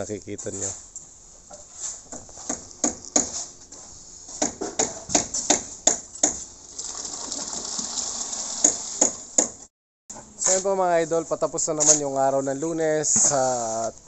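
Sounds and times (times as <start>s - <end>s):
wet concrete pouring hiss: 6.2s - 9.3s.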